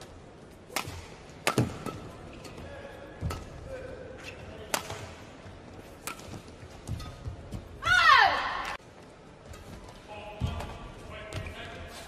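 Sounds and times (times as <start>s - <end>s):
racket smacking shuttlecock: 0.6s - 2.5s, 4.2s - 5.2s, 5.8s - 7.3s.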